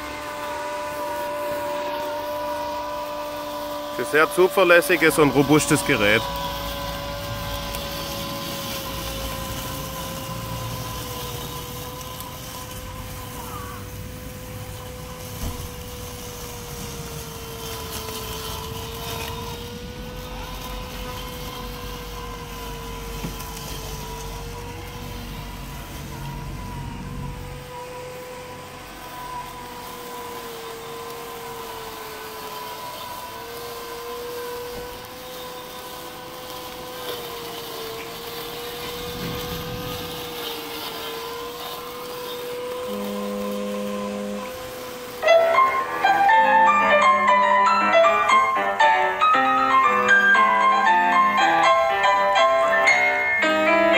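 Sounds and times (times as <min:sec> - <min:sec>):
robotic lawnmower motor whine: 0:00.0 - 0:53.9.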